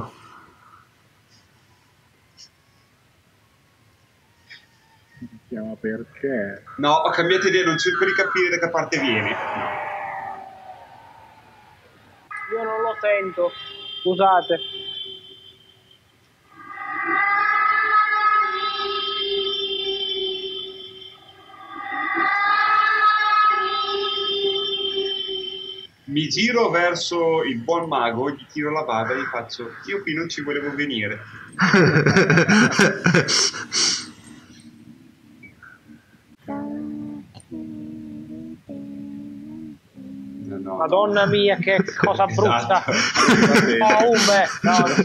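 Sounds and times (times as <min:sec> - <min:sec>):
steady low hum: 0:00.0 - 0:15.7, 0:23.6 - 0:45.0
ghostly wavering tones: 0:05.2 - 0:15.9, 0:16.5 - 0:26.2, 0:27.9 - 0:45.0.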